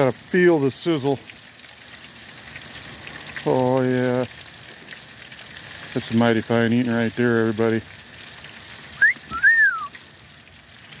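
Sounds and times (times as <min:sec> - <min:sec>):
fish sizzling in frying oil: 0:00.0 - 0:11.0
person wolf whistling: 0:09.0 - 0:09.9.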